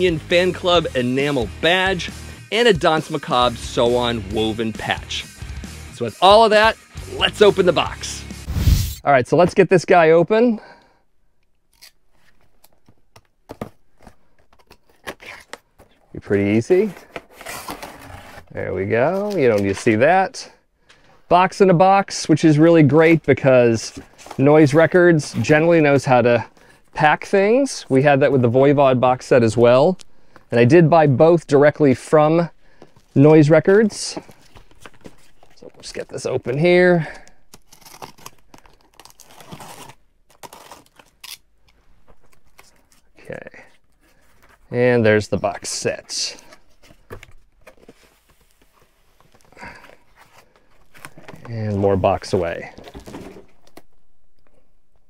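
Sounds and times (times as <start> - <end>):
cardboard scraping and rustling: 16.8 - 19.8, 45.9 - 53.8
packing tape tearing: 37.5 - 41.5.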